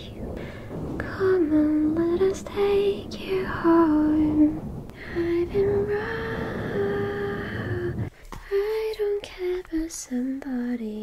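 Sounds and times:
woman singing softly: 0:00.0 - 0:11.0.

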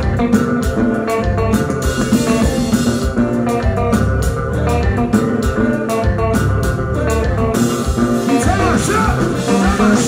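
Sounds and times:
bass guitar groove: 0:00.0 - 0:10.0
drum kit: 0:00.0 - 0:10.0
electric guitar: 0:00.0 - 0:10.0
keyboard: 0:00.0 - 0:10.0.

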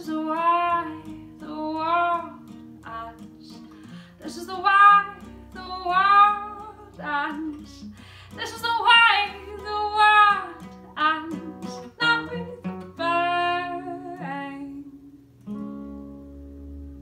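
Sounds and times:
woman singing: 0:00.0 - 0:15.2
plucked acoustic guitar: 0:00.0 - 0:17.0.

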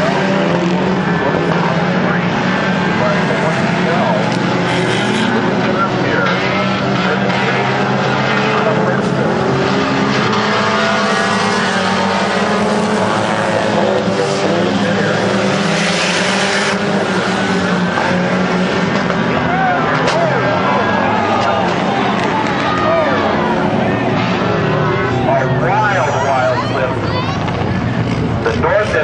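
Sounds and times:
race car engines revving: 0:00.0 - 0:29.0.

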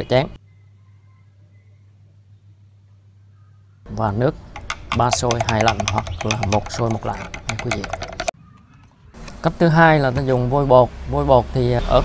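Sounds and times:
chopstick clicking inside plastic bottle: 0:04.6 - 0:08.3.

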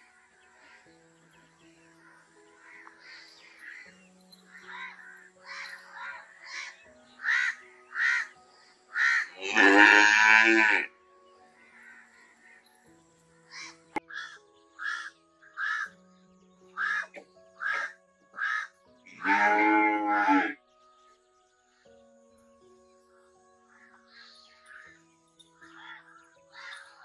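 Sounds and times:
crows cawing: 0:02.1 - 0:03.9, 0:04.5 - 0:10.8, 0:11.6 - 0:12.6, 0:13.5 - 0:16.0, 0:16.8 - 0:20.6, 0:25.6 - 0:27.0
cow mooing: 0:09.4 - 0:10.9, 0:19.2 - 0:20.6.

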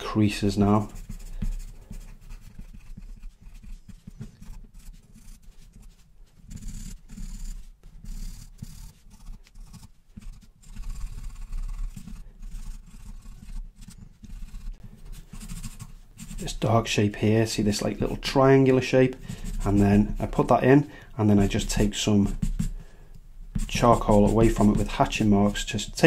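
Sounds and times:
pencil scratching on paper: 0:00.3 - 0:26.0.

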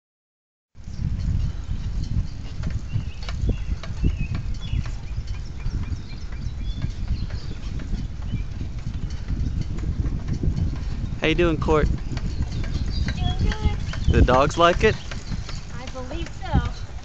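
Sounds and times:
microphone handling noise: 0:00.8 - 0:17.0
wind rumble: 0:00.8 - 0:17.0.

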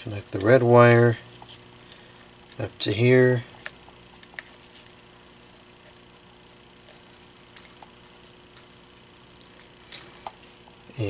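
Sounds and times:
clicks and rustles of wires: 0:00.0 - 0:00.7, 0:03.5 - 0:05.0, 0:06.8 - 0:10.6
steady low hum: 0:00.0 - 0:11.0.

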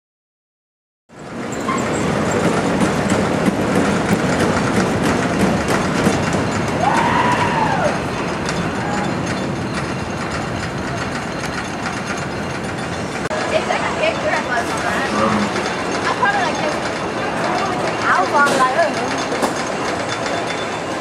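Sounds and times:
rising and falling squeal: 0:01.2 - 0:02.5, 0:05.8 - 0:13.2
roller coaster rumbling on wooden track: 0:01.2 - 0:21.0.

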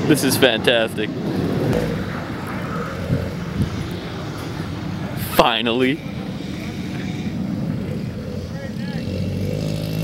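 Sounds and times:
distant car engine drone: 0:00.0 - 0:10.0.

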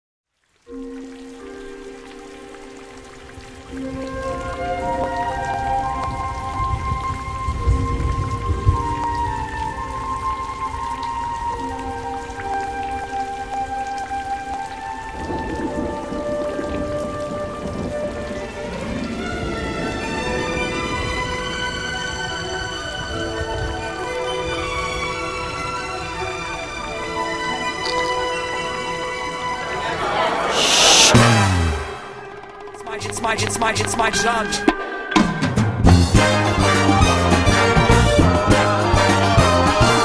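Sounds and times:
steady rain: 0:00.3 - 0:34.0.

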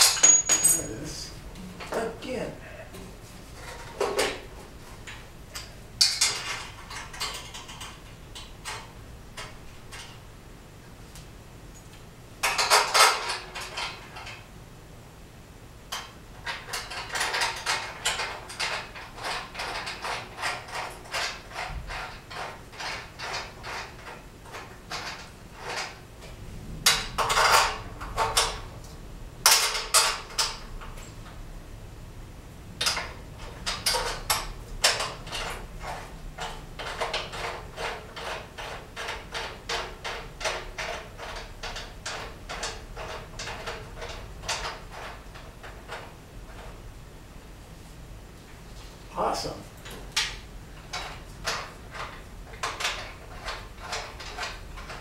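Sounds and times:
metallic clatters: 0:00.0 - 0:01.2.

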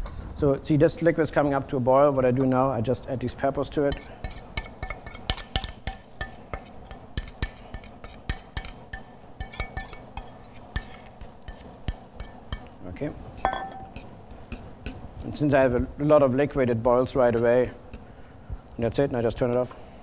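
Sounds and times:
utensil stirring in pan: 0:03.8 - 0:12.8, 0:13.4 - 0:15.2
utensil scraping metal bowl: 0:03.9 - 0:12.7, 0:13.4 - 0:15.0.

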